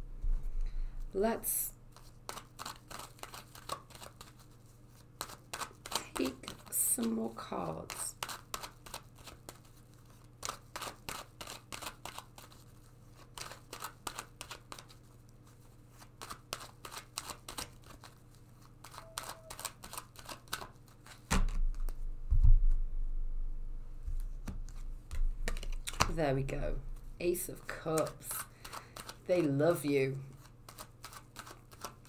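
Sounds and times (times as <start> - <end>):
cards being shuffled: 1.9 - 22.0, 24.1 - 32.0
handling noise bump and rumble: 21.5 - 24.5.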